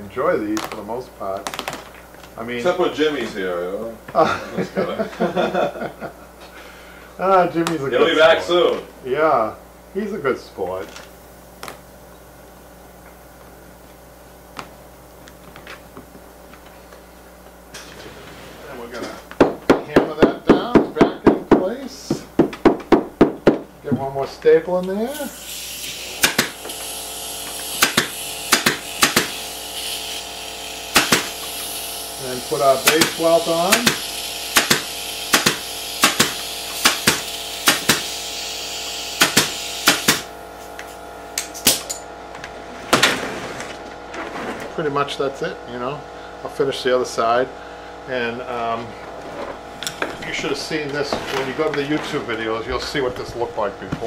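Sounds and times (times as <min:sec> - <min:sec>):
steady air hiss: 0:25.0 - 0:41.0
pneumatic staple gun firing: 0:25.2 - 0:42.0.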